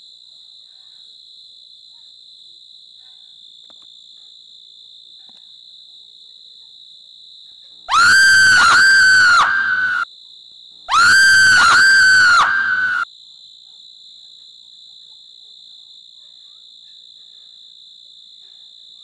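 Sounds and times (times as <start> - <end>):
high-pitched eerie shriek: 7.9 - 10.0, 10.9 - 13.0.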